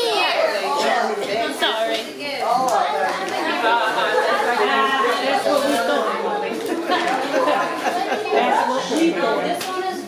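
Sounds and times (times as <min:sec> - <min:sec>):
indistinct chatter of voices: 0:00.0 - 0:10.0.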